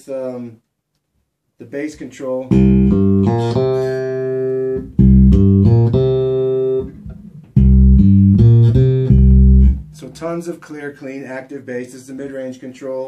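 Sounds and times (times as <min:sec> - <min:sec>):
electric bass plucked notes: 0:02.5 - 0:10.3.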